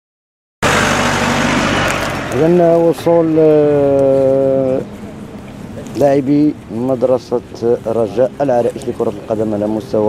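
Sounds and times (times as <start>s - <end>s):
loud rushing noise: 0.6s - 6.0s
minibus engine running: 0.6s - 10.0s.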